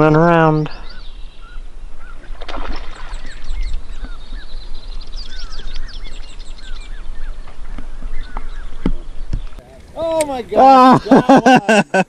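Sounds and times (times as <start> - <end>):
small birds chirping: 0.0 - 11.1.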